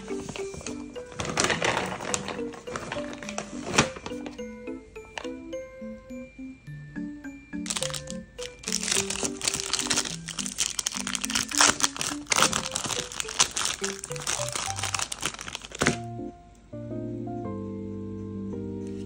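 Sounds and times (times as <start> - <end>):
wrapper crinkling and tearing: 0.0 - 4.4, 7.7 - 16.1
soft background tune: 0.0 - 19.0.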